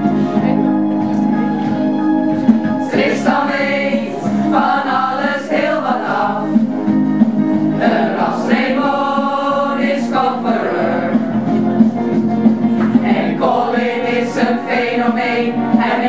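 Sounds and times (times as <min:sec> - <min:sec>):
instrumental accompaniment: 0:00.0 - 0:16.0
group singing together: 0:01.1 - 0:16.0.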